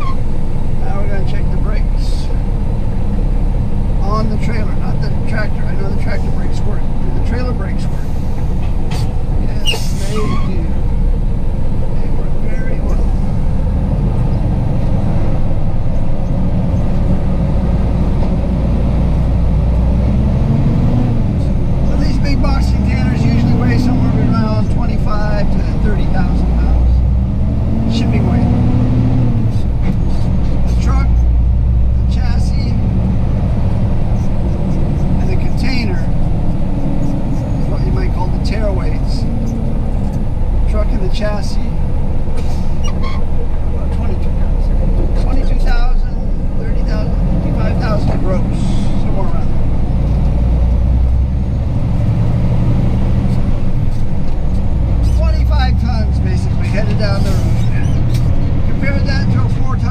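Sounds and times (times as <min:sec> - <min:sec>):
diesel truck engine rumbling: 0:00.0 - 0:59.9.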